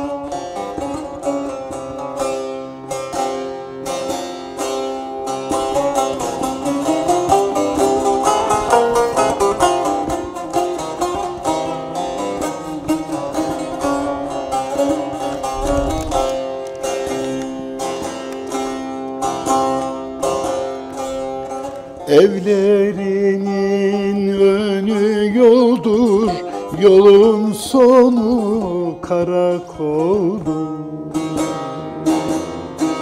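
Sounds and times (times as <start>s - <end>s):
plucked long-necked lute: 0.0s - 33.0s.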